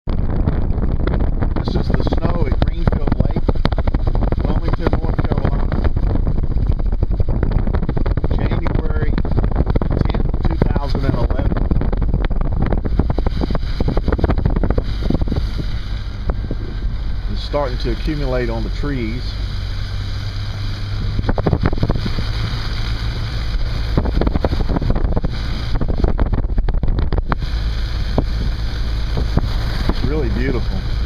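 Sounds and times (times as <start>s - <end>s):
car driving rumble: 0.0s - 31.0s
wind buffeting microphone: 0.0s - 31.0s.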